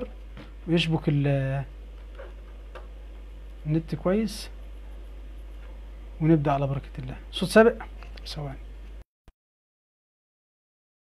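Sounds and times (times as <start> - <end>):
steady low hum: 0.0 - 9.0.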